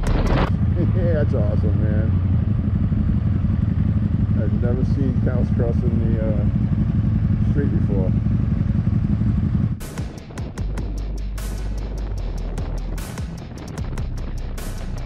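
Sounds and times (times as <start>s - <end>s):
motorcycle engines idling: 0.0s - 15.0s.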